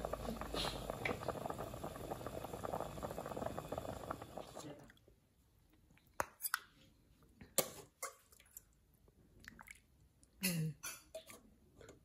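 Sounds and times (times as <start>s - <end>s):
broth bubbling in a metal pot: 0.0s - 5.0s.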